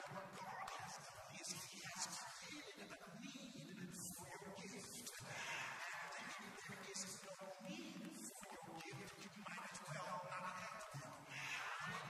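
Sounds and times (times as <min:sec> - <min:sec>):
man preaching into microphone: 0:00.0 - 0:12.0.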